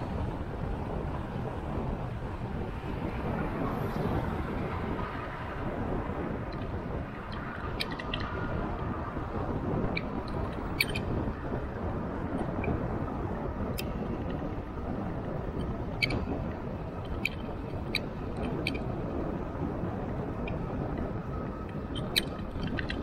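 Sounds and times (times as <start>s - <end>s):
road noise: 0.0s - 23.0s
rushing wind: 0.0s - 23.0s
sharp ticks: 6.5s - 8.4s, 17.0s - 18.9s.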